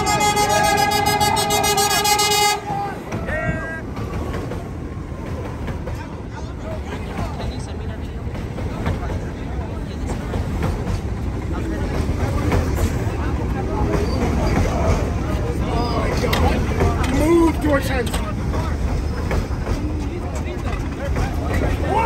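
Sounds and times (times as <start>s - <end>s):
train wheels rumbling on rails: 0.0s - 22.0s
clicking over rail joints: 1.6s - 22.0s.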